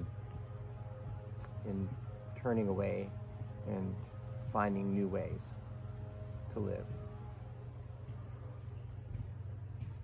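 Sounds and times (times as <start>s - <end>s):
insects trilling: 0.0s - 10.0s
low steady hum: 0.0s - 10.0s.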